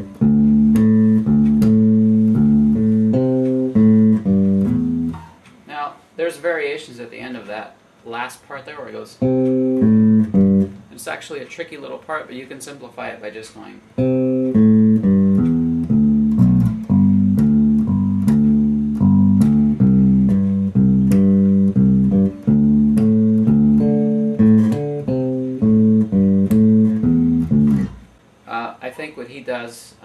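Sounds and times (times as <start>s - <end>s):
electric bass guitar riff: 0.0s - 5.4s, 9.2s - 10.9s, 14.0s - 28.2s.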